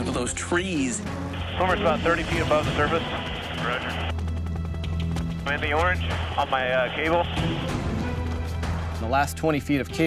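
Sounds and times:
background music: 0.0s - 10.0s
helicopter hovering drone: 0.6s - 9.1s.

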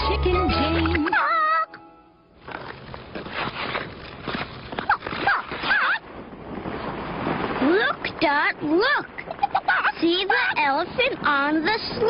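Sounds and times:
rushing scuffling noise: 2.4s - 10.2s.

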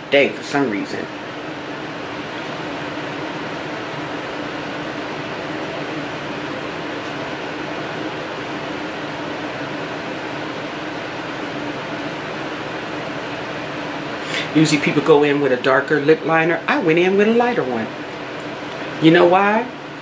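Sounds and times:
room noise hum and hiss: 0.0s - 20.0s.

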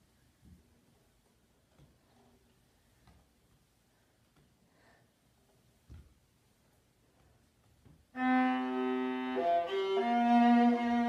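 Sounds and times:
viola bowed note: 8.2s - 11.0s.

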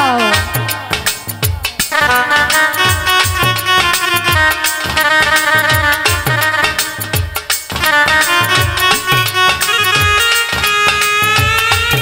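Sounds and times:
drum strokes dropping in pitch: 0.0s - 12.0s
reed-like melody: 0.0s - 12.0s.

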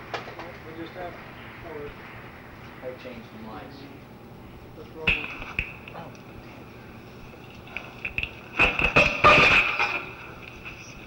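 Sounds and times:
tape hiss: 0.0s - 11.0s.

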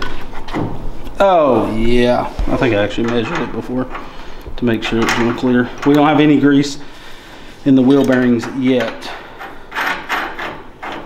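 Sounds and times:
lug nuts clinking and scraping: 2.6s - 6.8s, 7.7s - 11.0s.

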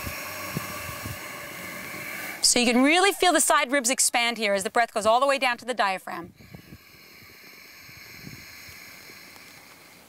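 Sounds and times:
long hissing breath inhale: 0.0s - 3.1s, 6.3s - 10.0s.

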